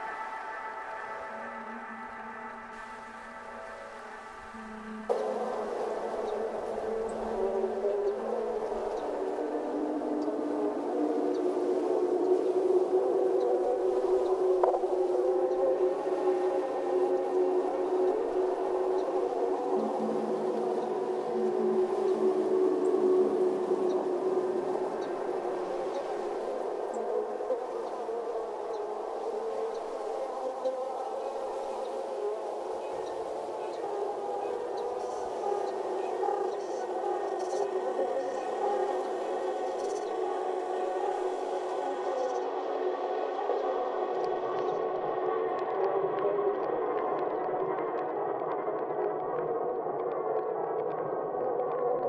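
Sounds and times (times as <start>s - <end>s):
ambient drone music: 0.0s - 52.0s.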